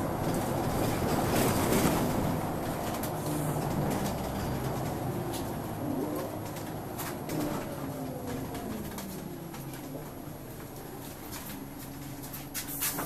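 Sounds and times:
gearbox whine: 0:00.0 - 0:12.2
bus engine drone: 0:00.0 - 0:13.0
interior rattles and clicks: 0:00.0 - 0:13.0.

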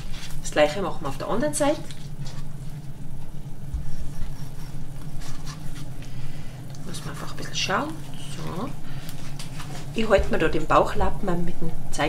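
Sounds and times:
steady low hum: 0:00.0 - 0:12.0
knife cutting fish: 0:03.8 - 0:05.9.

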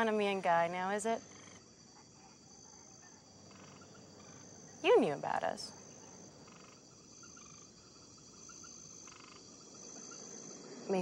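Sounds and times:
high insect whine: 0:00.0 - 0:11.0
frog calls: 0:01.1 - 0:10.5.

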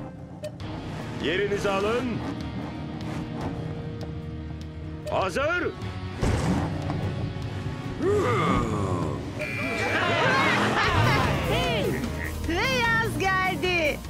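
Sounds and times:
background music: 0:00.0 - 0:14.0
cartoon characters laughing: 0:09.4 - 0:12.4.

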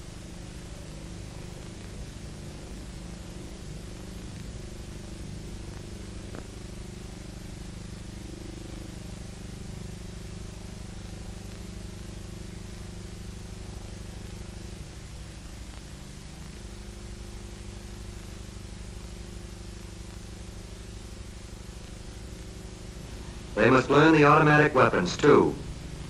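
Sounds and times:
film soundtrack hiss and hum: 0:00.0 - 0:26.0.

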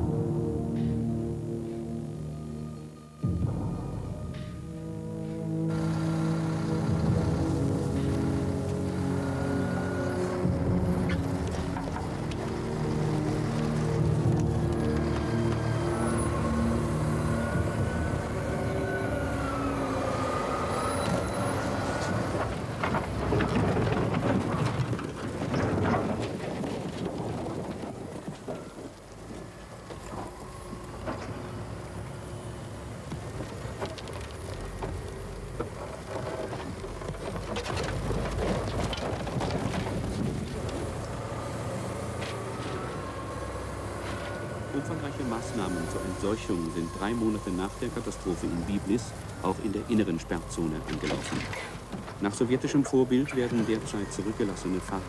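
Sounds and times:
diesel machine running under load: 0:03.2 - 0:55.0
metal crashing and crunching: 0:22.3 - 0:28.9.

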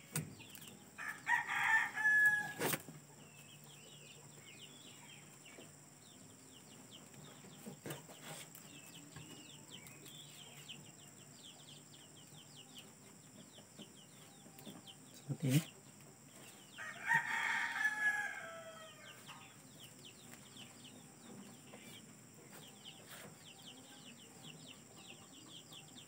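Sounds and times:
rooster crowing: 0:01.0 - 0:02.7, 0:16.7 - 0:19.2.

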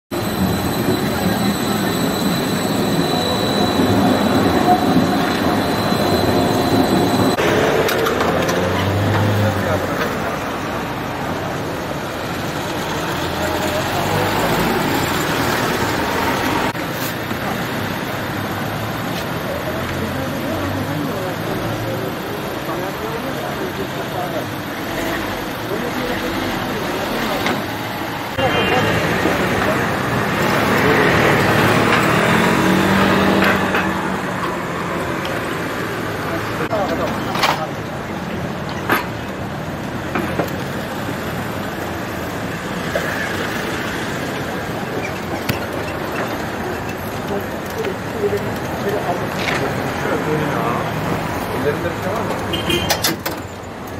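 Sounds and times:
road traffic: 0:00.0 - 0:53.9
people talking: 0:00.2 - 0:39.4, 0:44.4 - 0:53.1.

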